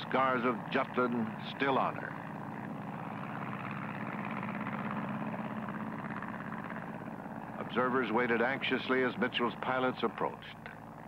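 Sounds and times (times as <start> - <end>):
piston aircraft engine droning: 0.0 - 11.0.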